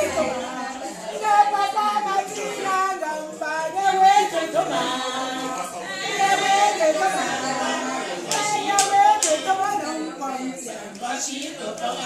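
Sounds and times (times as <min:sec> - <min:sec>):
women singing unaccompanied: 0:00.0 - 0:12.0.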